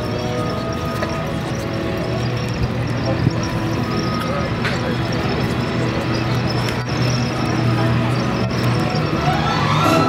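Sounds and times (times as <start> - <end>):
armoured vehicle engines humming: 0.0 - 10.0
indistinct voices: 0.0 - 10.0.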